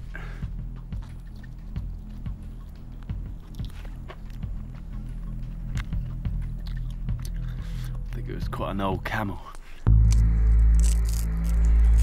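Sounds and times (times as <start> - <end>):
man chewing meat: 0.0 - 8.2, 9.6 - 12.0
low background music: 0.0 - 12.0.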